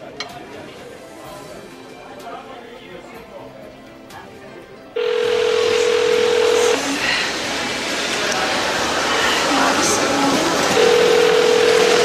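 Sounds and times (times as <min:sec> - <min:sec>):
busy indoor background noise: 0:00.0 - 0:12.0
telephone tone: 0:05.0 - 0:07.0, 0:10.7 - 0:12.0.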